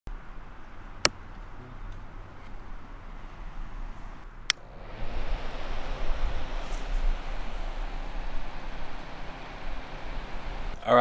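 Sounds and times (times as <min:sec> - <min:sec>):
electric fan running: 0:04.5 - 0:10.8.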